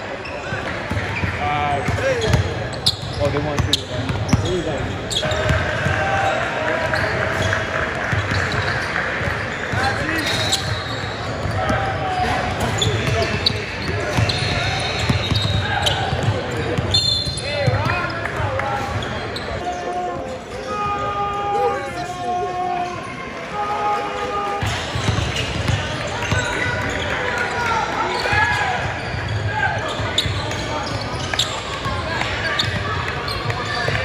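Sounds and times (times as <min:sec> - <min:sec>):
sneaker squeaks: 0:00.0 - 0:21.9, 0:22.5 - 0:34.0
chatter of many voices: 0:00.0 - 0:34.0
people talking: 0:00.0 - 0:34.0.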